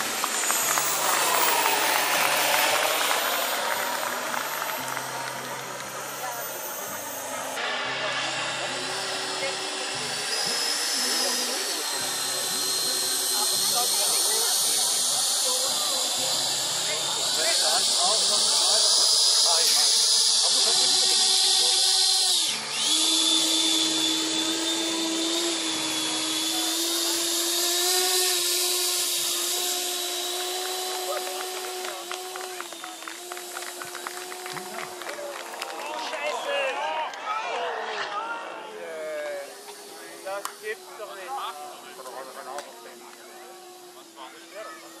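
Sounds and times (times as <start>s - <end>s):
model jet turbine whine: 0.0s - 45.0s.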